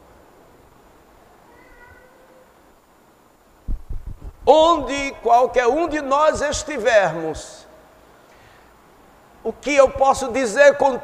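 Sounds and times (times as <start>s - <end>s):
faint pitched call: 1.5s - 2.6s.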